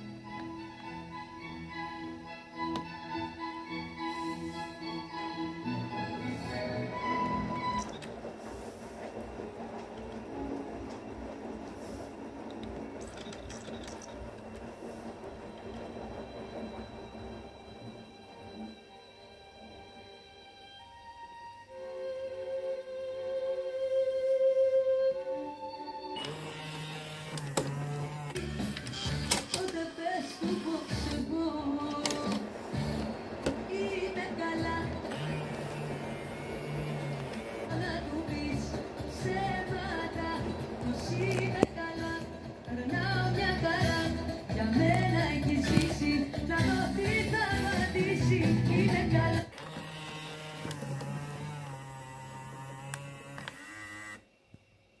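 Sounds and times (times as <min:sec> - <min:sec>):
small motor whirring: 0:26.2 - 0:29.2, 0:49.6 - 0:54.3
motorized faceplate whirring: 0:26.2 - 0:40.3, 0:49.5 - 0:54.3
music from car stereo: 0:28.4 - 0:49.5.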